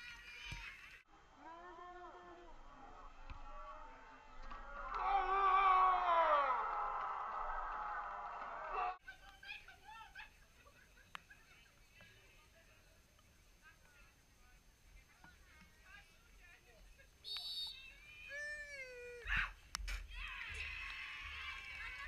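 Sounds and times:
distant shouts of footballers: 1.4 - 9.0
referee's whistle: 17.2 - 17.9.

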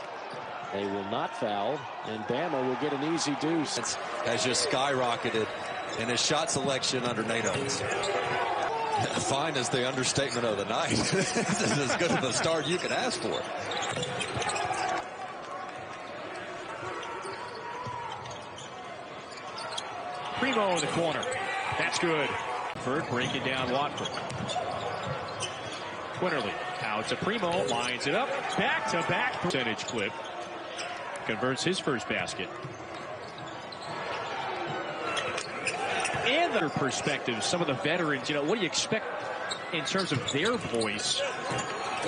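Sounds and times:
arena crowd noise: 0.0 - 42.0.

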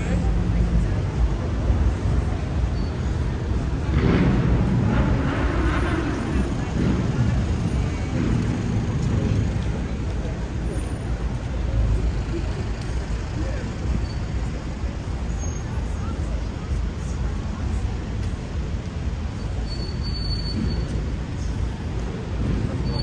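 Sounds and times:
people's voices: 0.0 - 23.0
road traffic drone: 0.0 - 23.0.

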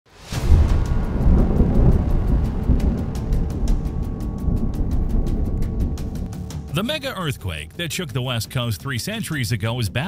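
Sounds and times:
deep cinematic rumble with crackling: 0.3 - 8.5.

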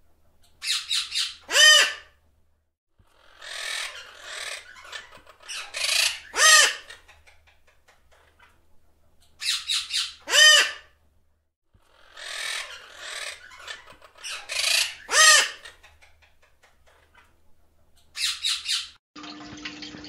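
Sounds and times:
parrots squawking: 0.6 - 2.2, 3.0 - 7.6, 9.4 - 11.0, 11.8 - 16.4, 18.1 - 19.0.

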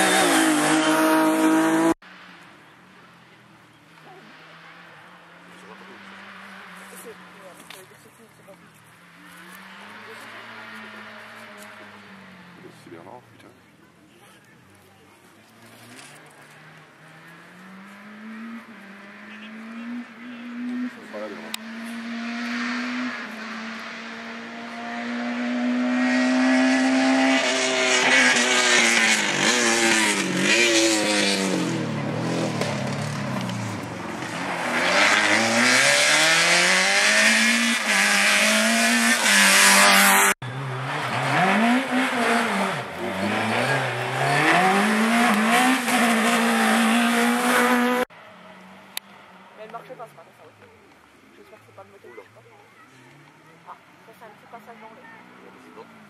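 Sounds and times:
rally car engine at high revs: 0.0 - 2.0, 15.7 - 48.1.

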